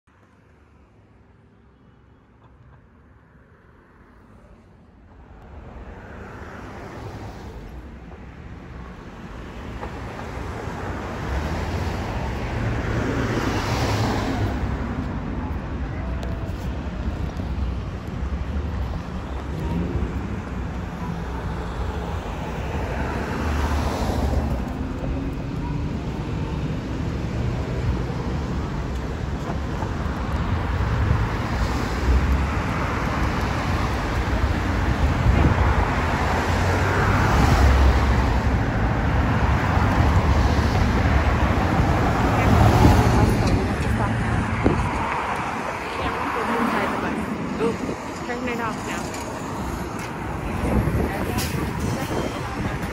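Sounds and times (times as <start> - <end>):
cars passing: 0.4 - 52.9.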